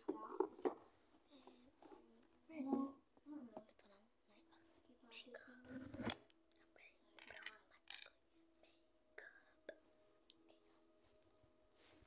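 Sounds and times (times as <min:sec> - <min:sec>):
quiet speech and whispering: 0:00.0 - 0:12.0.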